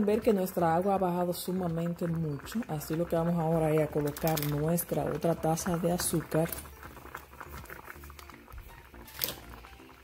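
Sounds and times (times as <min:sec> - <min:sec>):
pot bubbling: 0:00.0 - 0:10.0
sugar pouring patter: 0:02.6 - 0:10.0.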